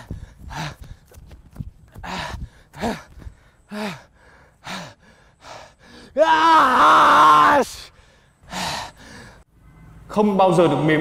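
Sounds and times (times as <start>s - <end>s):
man gasping and groaning: 0.0s - 1.1s, 1.9s - 6.2s.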